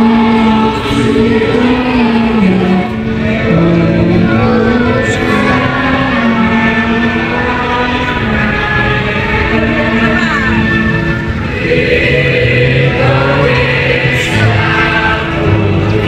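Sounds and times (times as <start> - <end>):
children singing in unison: 0.0 - 16.0.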